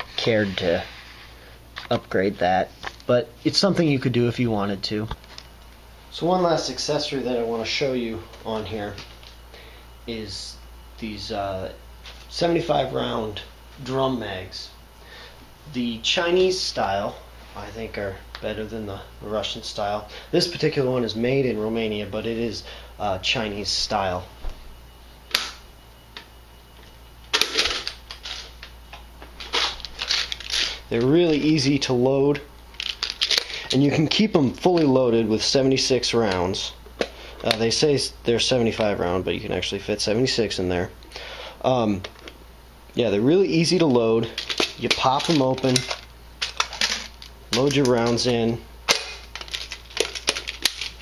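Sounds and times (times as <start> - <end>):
drum magazine clicks and clatter: 44.4 - 48.3, 48.9 - 51.0.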